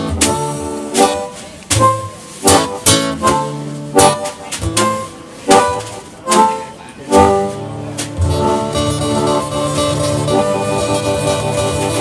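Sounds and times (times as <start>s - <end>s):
acoustic guitar strumming: 0.0s - 12.0s
harmonica playing held notes: 8.4s - 12.0s.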